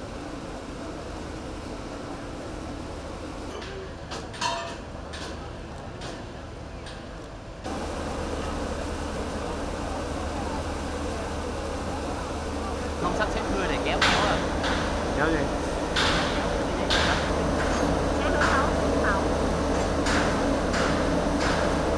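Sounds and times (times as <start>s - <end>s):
dockside rumble and hiss: 0.0s - 21.9s.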